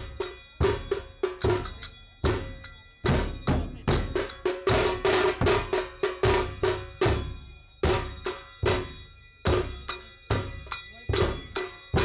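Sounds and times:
large drums struck: 3.1s - 10.6s.

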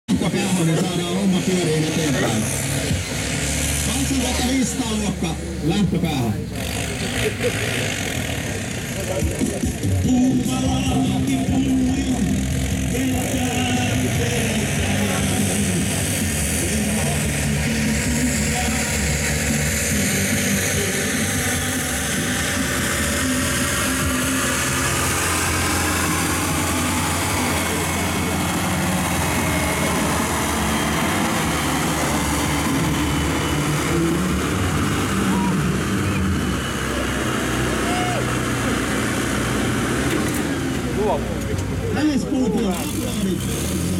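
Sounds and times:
tractor diesel engine labouring: 0.0s - 43.9s.

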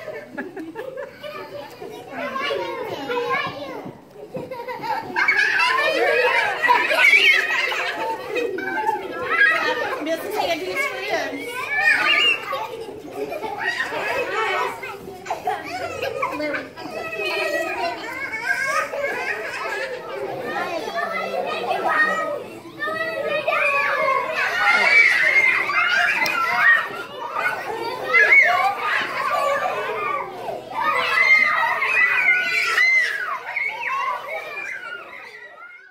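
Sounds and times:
children calling out: 0.0s - 35.9s.

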